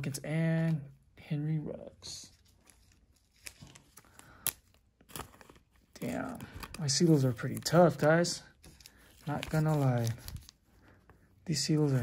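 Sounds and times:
cards and plastic rustling: 0.0s - 1.0s, 2.0s - 12.0s.

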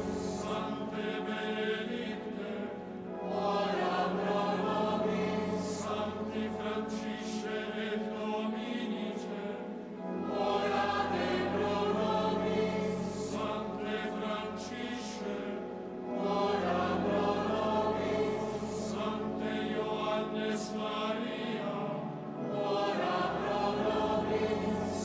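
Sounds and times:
choir singing liturgical chant: 0.0s - 25.0s.

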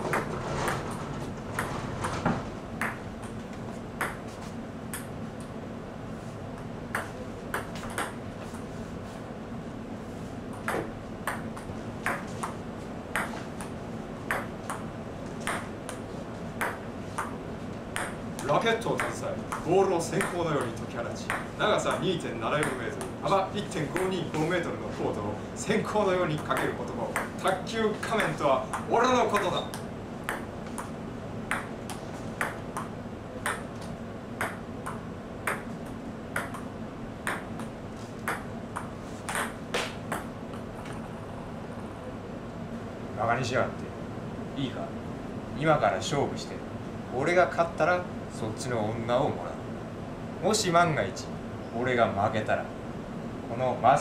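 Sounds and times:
table tennis ball knocks: 0.0s - 0.8s, 2.8s - 3.4s, 10.5s - 16.0s, 26.5s - 40.7s
low steady hum: 0.0s - 54.0s.

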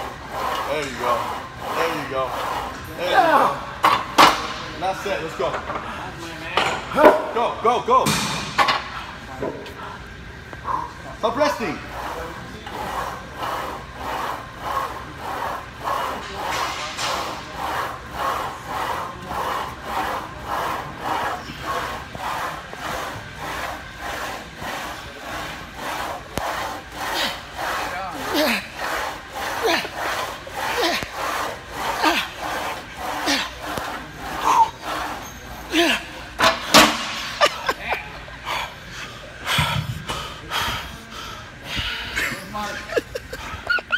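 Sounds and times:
man panting hard: 17.2s - 36.2s, 38.4s - 43.9s
people laughing: 37.0s - 38.4s, 42.1s - 43.9s.

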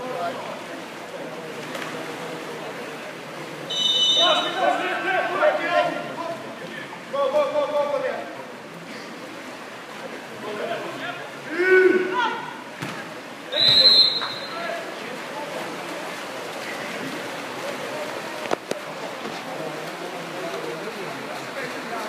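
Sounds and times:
swimmers splashing: 0.0s - 22.0s
referee whistle blast: 3.7s - 4.6s, 13.5s - 14.6s
man shouting: 11.5s - 12.6s.

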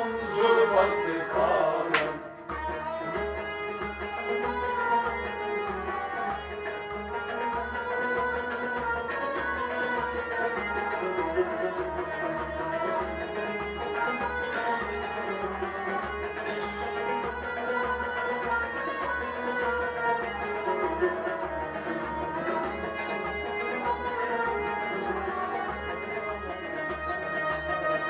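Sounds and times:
harmonium melody: 0.0s - 28.0s
plucked string instrument: 0.0s - 28.0s.

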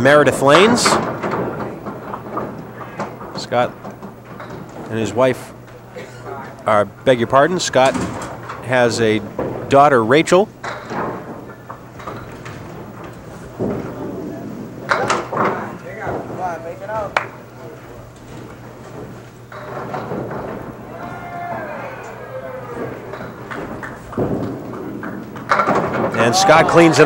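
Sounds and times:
bowling balls knocking pins: 0.0s - 27.0s
pins clattering: 10.6s - 27.0s
murmur of spectators: 20.6s - 27.0s.

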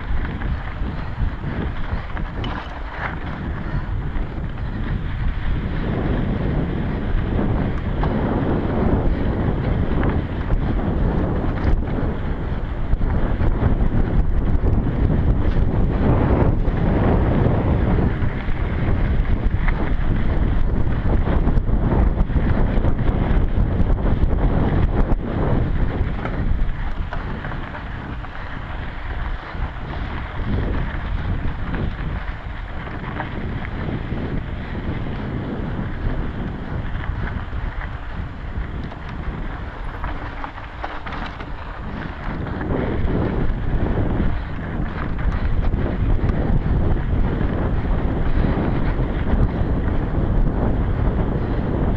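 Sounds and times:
bike knocks and rattles: 0.0s - 51.9s
wind buffeting microphone: 0.0s - 51.9s.

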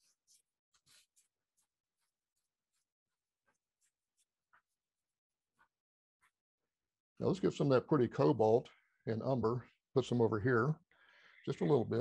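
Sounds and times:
paintbrush swishing on paper: 0.0s - 6.4s.

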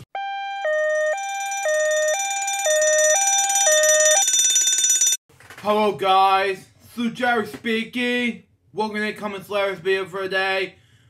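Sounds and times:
electronic two-tone alarm siren: 0.0s - 5.2s.

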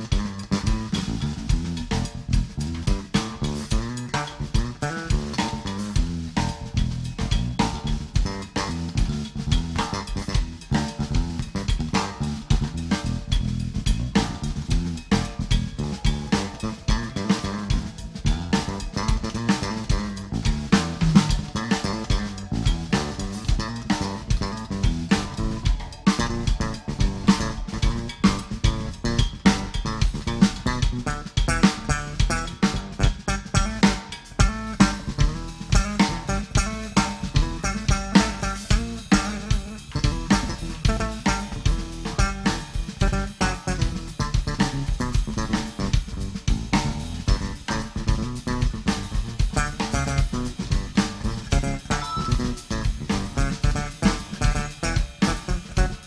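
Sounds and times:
drum kit beat: 0.0s - 56.0s
electric bass guitar: 0.0s - 56.0s.

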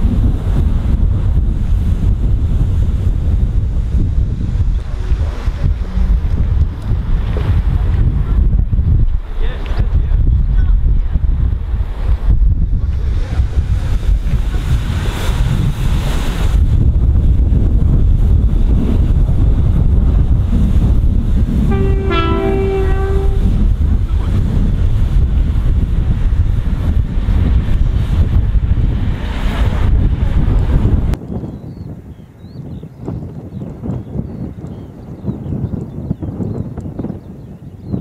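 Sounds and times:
wind buffeting microphone: 0.0s - 38.0s
train horn: 21.6s - 23.8s.

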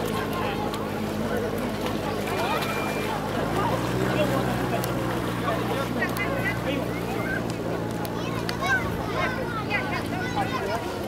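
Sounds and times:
chatter and calls of people: 0.0s - 11.0s
motorboat engine droning: 0.0s - 11.0s.

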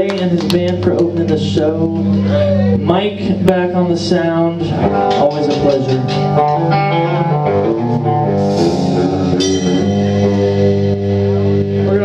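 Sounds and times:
bass guitar: 0.0s - 12.0s
electric guitar chords: 0.0s - 12.0s.

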